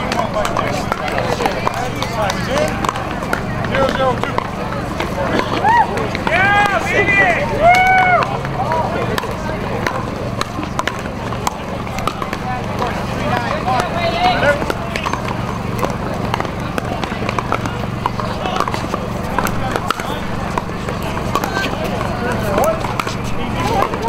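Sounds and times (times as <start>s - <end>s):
paddles hitting plastic ball: 0.0s - 24.0s
people talking: 0.0s - 24.0s.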